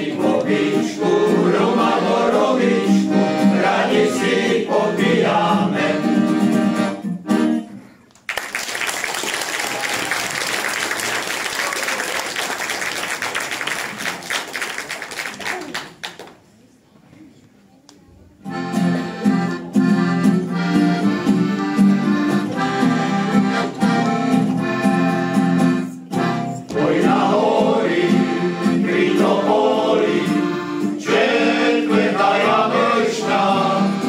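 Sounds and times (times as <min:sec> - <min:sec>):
male choir singing: 0:00.0 - 0:06.4, 0:26.7 - 0:34.0
accordion: 0:00.0 - 0:07.9, 0:18.4 - 0:34.0.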